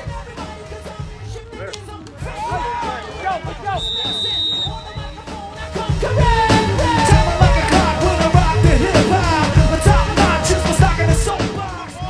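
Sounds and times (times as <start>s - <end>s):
pop-rock song with singing: 0.0s - 12.0s
referee's whistle blast: 3.6s - 5.2s.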